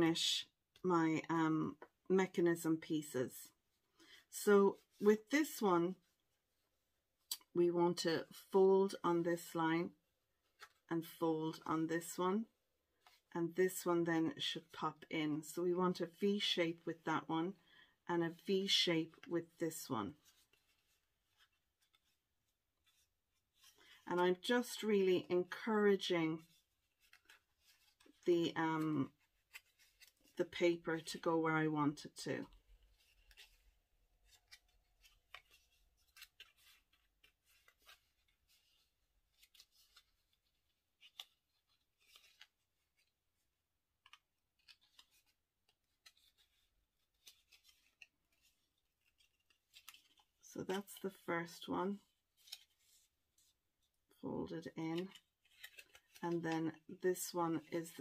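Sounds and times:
card being folded and creased: 10.3 - 10.9, 20.2 - 24.0, 26.4 - 31.2, 32.4 - 51.3, 52.0 - 54.2, 54.8 - 57.0.

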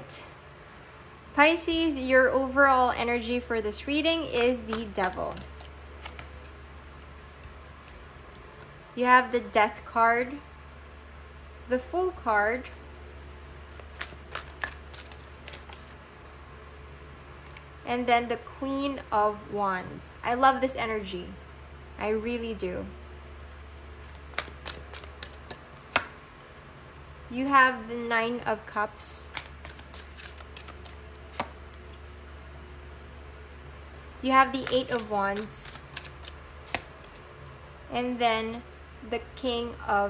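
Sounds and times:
cards clicking and snapping: 4.4 - 6.5, 13.7 - 16.0, 24.1 - 26.2, 29.3 - 31.9, 34.5 - 37.3.

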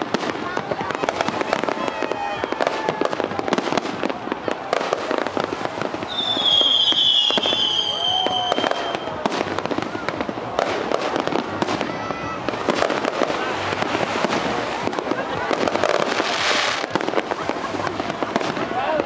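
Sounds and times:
fireworks bangs and crackling: 0.0 - 19.0
voices of onlookers: 0.0 - 19.0
long high firework whistle: 1.1 - 3.9, 6.0 - 9.6.

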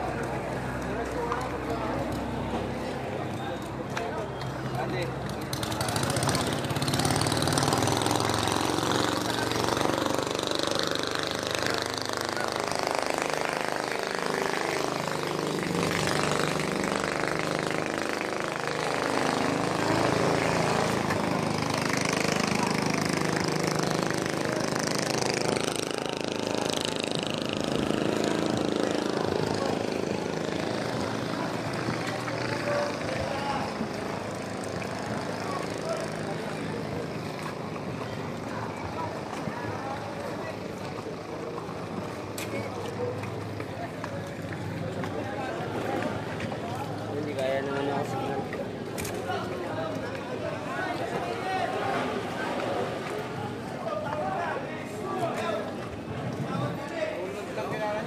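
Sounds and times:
boat engine running: 5.2 - 46.2.

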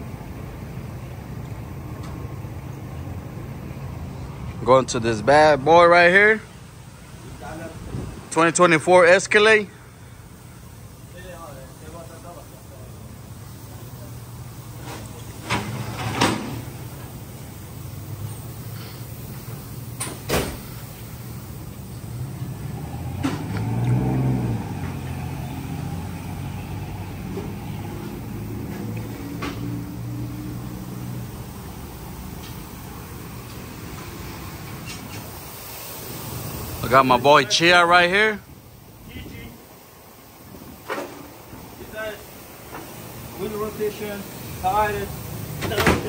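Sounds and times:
low mechanical hum: 0.0 - 46.0.

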